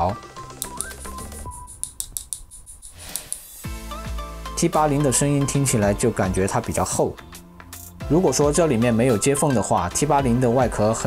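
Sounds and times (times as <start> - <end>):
background music: 0.0 - 2.2, 3.4 - 11.0.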